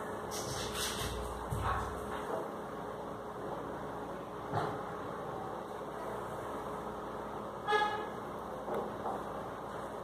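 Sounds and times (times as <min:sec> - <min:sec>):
steady background noise: 0:00.0 - 0:10.0
short pitched toot: 0:07.6 - 0:08.2.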